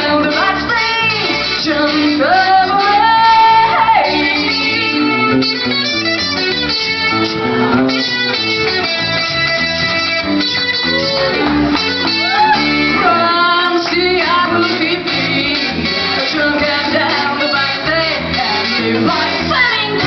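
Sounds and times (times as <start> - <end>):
woman singing: 0.0 - 5.3, 12.3 - 20.0
acoustic guitar: 0.0 - 20.0
electric bass: 0.0 - 20.0.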